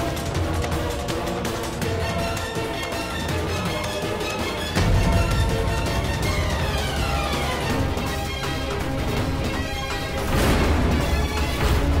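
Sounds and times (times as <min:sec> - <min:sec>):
dramatic background score: 0:00.0 - 0:12.0.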